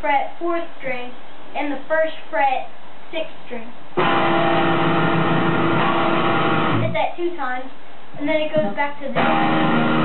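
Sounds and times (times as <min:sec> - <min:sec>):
electric guitar chord: 0:04.0 - 0:06.9, 0:09.2 - 0:10.0.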